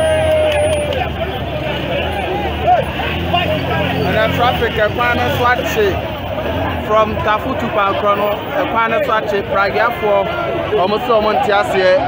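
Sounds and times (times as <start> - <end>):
vehicle engine running: 0.0 - 10.7
crowd talking: 0.0 - 12.0.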